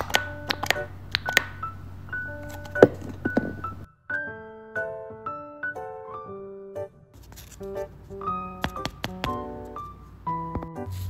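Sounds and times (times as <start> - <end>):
soft background music: 0.0 - 11.0.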